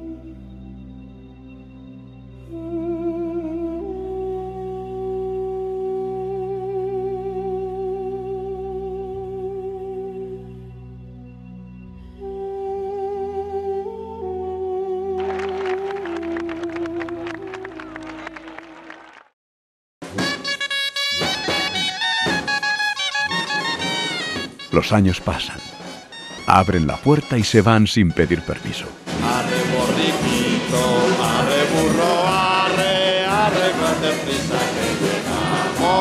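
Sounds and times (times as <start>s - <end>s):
clarinet and wind instrument melody: 20.1s - 32.0s.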